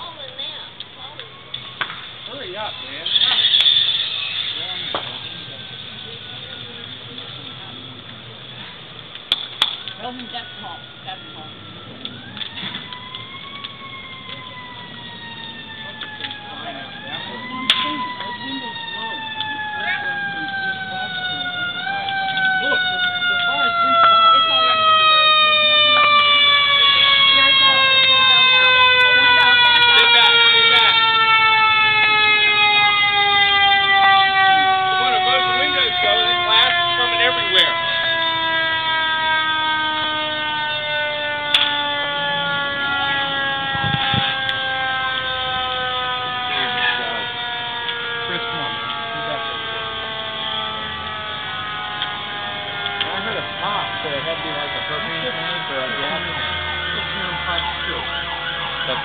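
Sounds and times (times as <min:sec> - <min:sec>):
mechanical siren winding down: 0:09.8 - 0:59.0.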